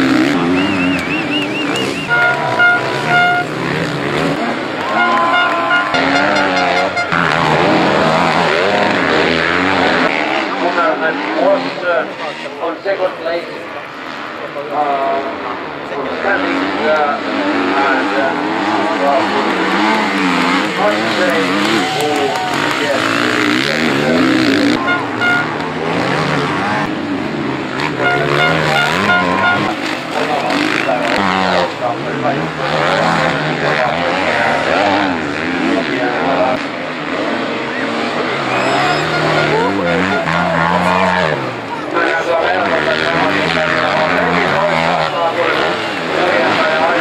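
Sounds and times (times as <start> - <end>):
motorcycle engines revving: 0.0 - 47.0.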